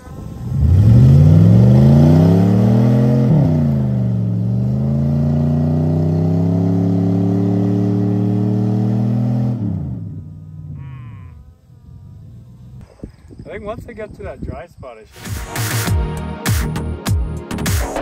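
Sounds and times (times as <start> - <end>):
pickup engine revving hard: 0.0 - 10.2.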